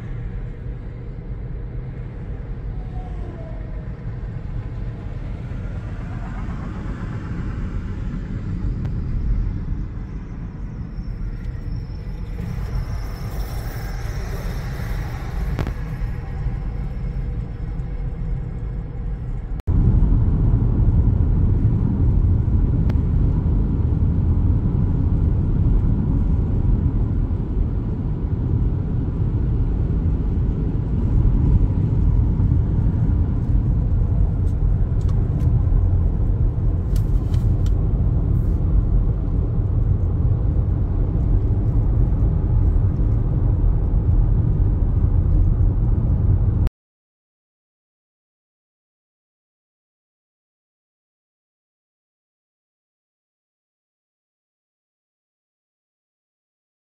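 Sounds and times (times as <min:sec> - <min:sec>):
car interior road noise: 0:00.0 - 0:46.7.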